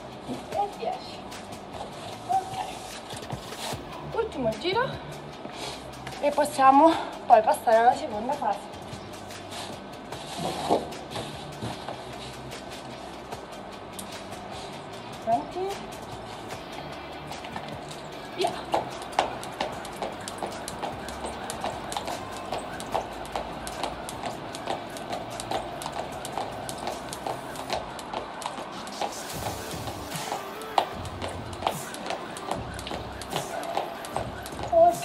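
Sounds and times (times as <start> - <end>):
jump rope slapping tiles: 17.3 - 35.0.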